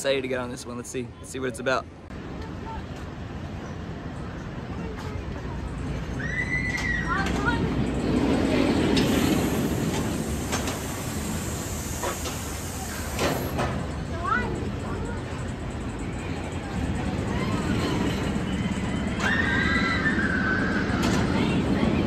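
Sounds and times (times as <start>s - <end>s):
roller coaster rumbling on track: 1.8s - 22.0s
riders screaming: 6.1s - 7.3s, 18.6s - 21.5s.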